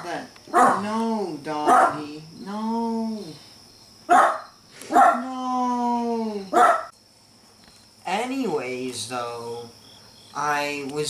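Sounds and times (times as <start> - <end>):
dog barking: 0.5 - 0.9, 1.6 - 2.0, 4.1 - 5.3, 6.5 - 6.9.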